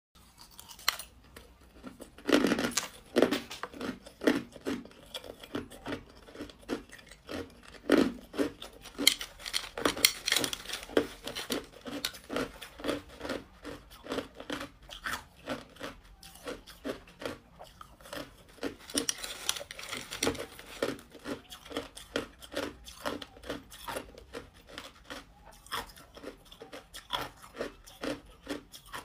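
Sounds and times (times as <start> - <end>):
ice being chewed: 0.2 - 29.0.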